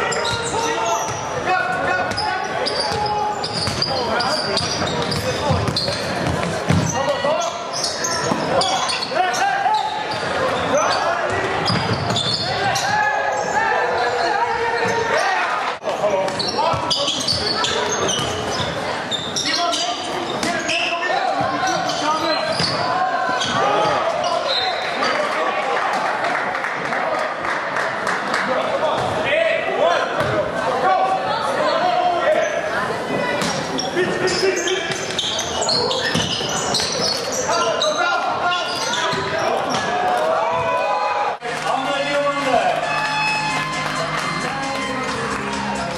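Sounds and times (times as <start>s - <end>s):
players and spectators shouting: 0.0s - 26.0s, 29.2s - 45.9s
sneakers squeaking on court: 0.1s - 1.4s, 2.0s - 15.2s, 15.9s - 24.9s, 33.4s - 40.0s
ball bouncing on court: 2.9s - 3.9s, 4.6s - 7.0s, 11.3s - 12.4s, 22.5s - 22.8s, 30.2s - 30.4s, 36.1s - 36.9s.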